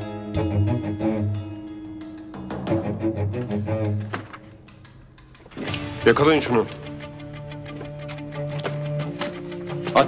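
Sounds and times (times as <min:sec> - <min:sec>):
tense dramatic string score: 0:00.0 - 0:10.0.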